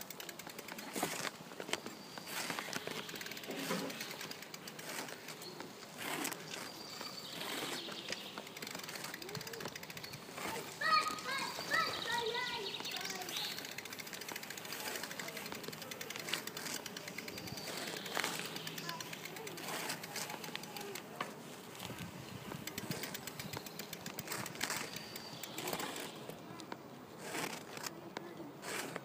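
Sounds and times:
sharp clicks: 0:00.0 - 0:21.3, 0:22.6 - 0:29.0
people talking outdoors: 0:00.0 - 0:29.0
steady background noise: 0:00.0 - 0:29.0.

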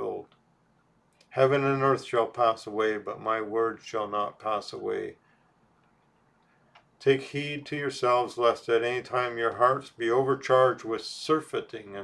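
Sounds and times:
faint click: 0:05.8 - 0:07.0.

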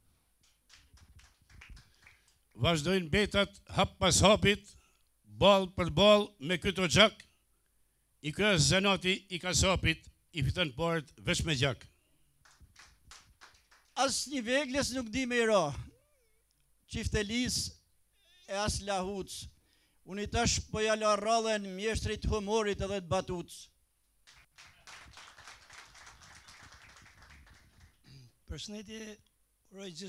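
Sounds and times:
light hand clapping: 0:00.4 - 0:02.6, 0:12.4 - 0:14.0, 0:24.3 - 0:28.0
small group applauding: 0:00.4 - 0:02.6, 0:12.4 - 0:14.0, 0:24.2 - 0:28.1.

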